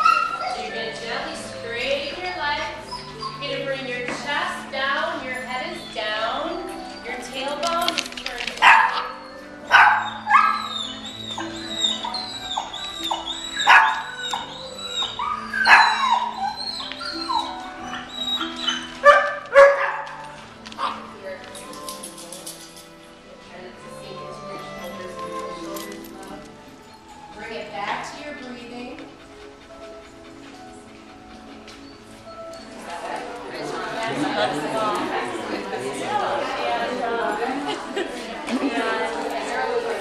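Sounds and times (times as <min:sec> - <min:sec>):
dogs barking and yipping: 0:00.0 - 0:23.0, 0:24.7 - 0:35.5
soft background music: 0:00.0 - 0:40.0.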